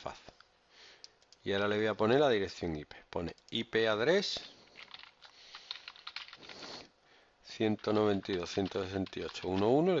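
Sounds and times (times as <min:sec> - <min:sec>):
keyboard typing clicks: 0:04.8 - 0:06.6.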